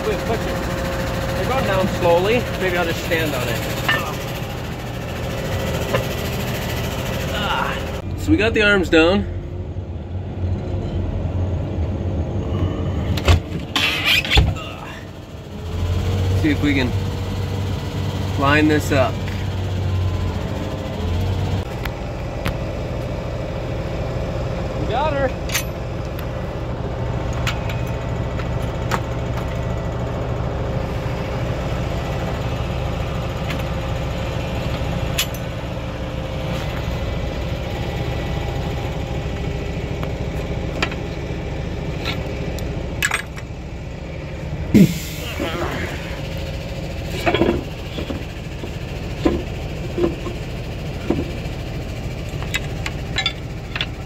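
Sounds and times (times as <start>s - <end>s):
tractor engine idling: 0.0s - 10.2s, 13.4s - 54.0s
metallic clanks and knocks: 3.4s - 4.4s, 47.1s - 51.4s, 52.3s - 54.0s.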